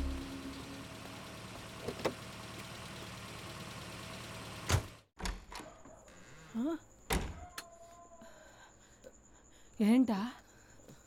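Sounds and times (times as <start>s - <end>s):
jeep engine idling: 0.0s - 4.7s.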